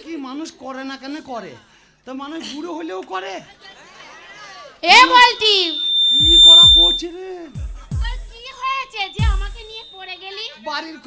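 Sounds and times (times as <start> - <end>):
high whistle-like tone: 4.9 - 7.3, 7.9 - 10.0.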